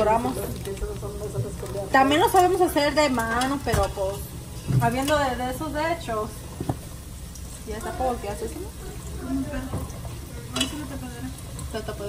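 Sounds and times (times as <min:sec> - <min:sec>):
food frying in hot oil: 0:00.0 - 0:12.0
metal tongs clicking against pot: 0:02.1 - 0:04.2, 0:10.5 - 0:11.0.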